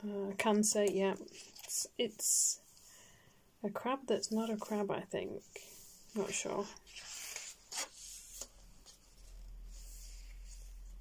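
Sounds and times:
paper page turning: 6.3 - 11.0.

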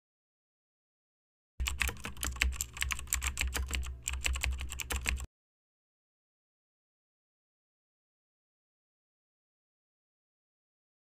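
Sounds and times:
keyboard key clicks: 1.6 - 5.3.

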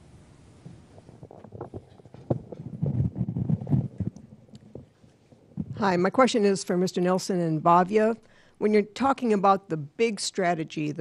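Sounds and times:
microphone handling knocks and rubs: 0.6 - 5.9.

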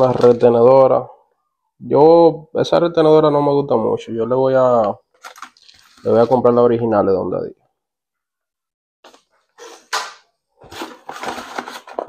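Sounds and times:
plastic packaging crinkling: 5.2 - 6.4
parts shuffled in cardboard box: 10.7 - 12.0.

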